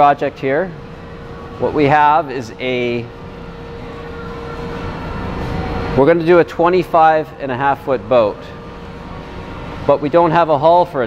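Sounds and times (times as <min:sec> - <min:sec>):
faint hum: 0:00.0 - 0:11.0
low mechanical rumble: 0:00.0 - 0:11.0.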